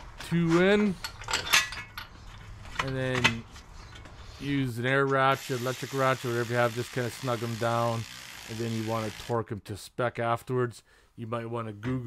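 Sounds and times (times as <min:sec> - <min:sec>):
metal bolts clinking: 0:00.8 - 0:04.0.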